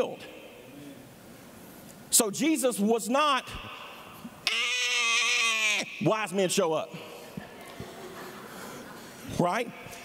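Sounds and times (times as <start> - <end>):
man holding a long vowel: 4.4 - 6.1.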